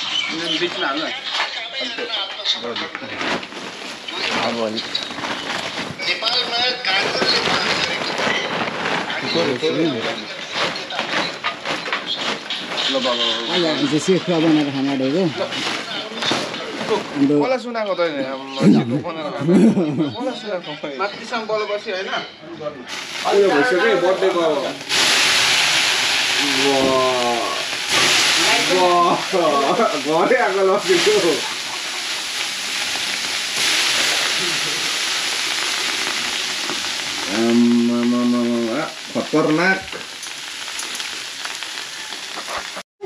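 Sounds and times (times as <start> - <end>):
meat sizzling on a grill: 0.0 - 18.6, 22.9 - 42.8
fire crackling: 0.0 - 18.9, 22.9 - 42.9
voices talking: 0.0 - 25.6, 26.3 - 40.1.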